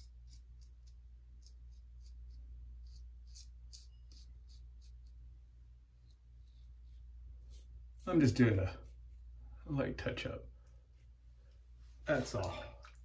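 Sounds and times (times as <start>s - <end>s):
razor scraping facial hair: 0.0s - 5.2s, 6.0s - 8.2s.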